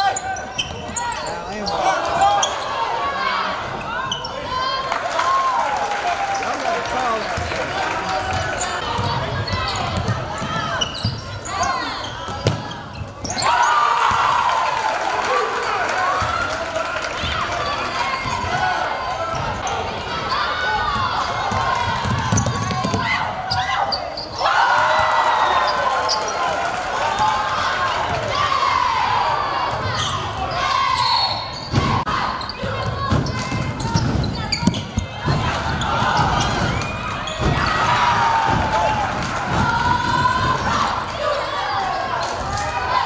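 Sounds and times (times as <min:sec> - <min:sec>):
sneakers squeaking: 0:00.0 - 0:04.7, 0:08.2 - 0:13.7, 0:19.2 - 0:24.4, 0:29.7 - 0:37.9.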